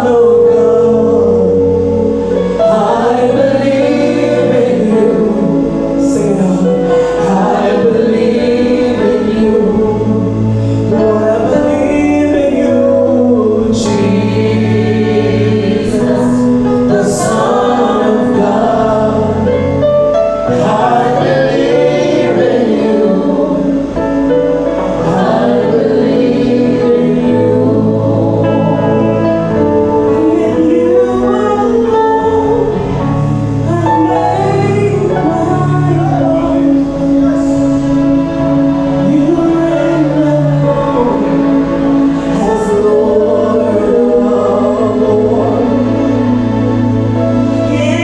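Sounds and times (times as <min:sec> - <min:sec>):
instrumental backing: 0:00.0 - 0:48.0
voices singing along: 0:00.0 - 0:48.0.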